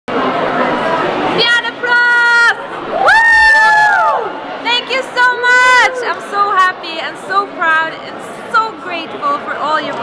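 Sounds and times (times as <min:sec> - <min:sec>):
woman whooping: 0:02.9 - 0:04.3.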